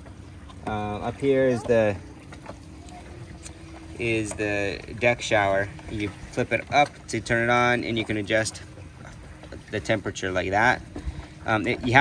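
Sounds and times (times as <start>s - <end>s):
soft background hum: 0.0s - 12.0s.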